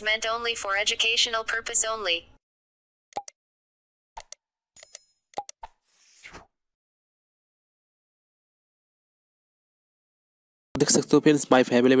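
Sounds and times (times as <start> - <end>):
short clicks and pops: 3.1 - 3.4, 4.2 - 5.8.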